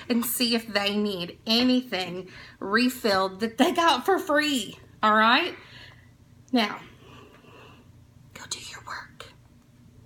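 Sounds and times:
woman whispering: 0:08.3 - 0:09.4.

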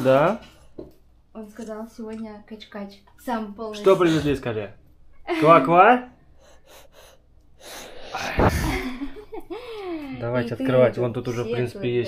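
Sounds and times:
gliding vocal sounds: 0:07.9 - 0:09.1.

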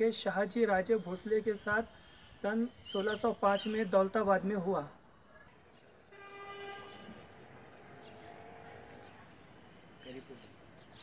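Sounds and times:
distant horn: 0:06.1 - 0:09.2.

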